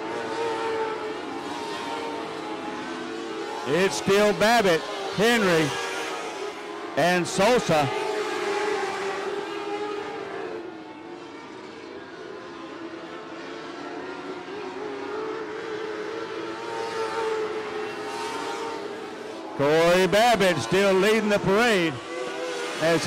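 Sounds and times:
race car engines droning: 0.0s - 23.0s.

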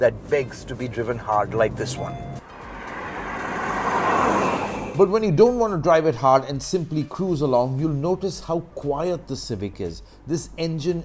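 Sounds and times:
car tyre and road noise: 0.0s - 5.1s.

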